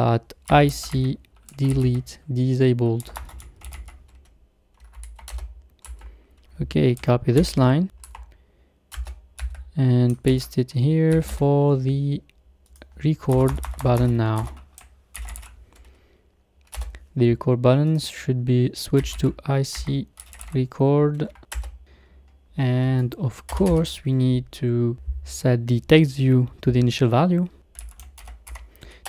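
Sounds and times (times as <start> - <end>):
computer keyboard typing: 0.3 - 2.2, 2.8 - 10.5, 12.6 - 16.0, 16.6 - 17.0, 18.9 - 20.6, 21.2 - 21.8, 23.4 - 24.0, 27.7 - 28.7.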